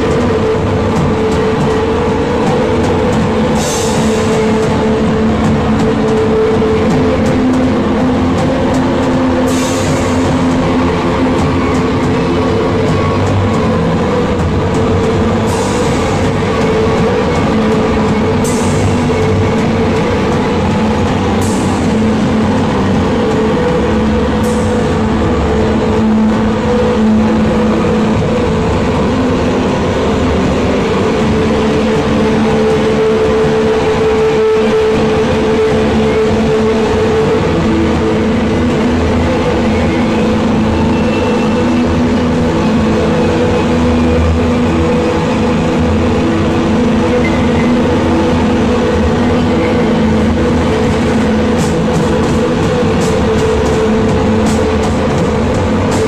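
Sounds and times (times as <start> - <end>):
distorted guitar and bass drone: 0.0 - 56.0.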